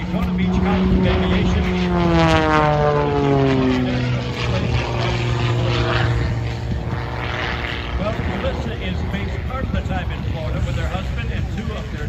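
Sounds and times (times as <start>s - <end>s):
propeller plane engine drone: 0.0s - 12.0s.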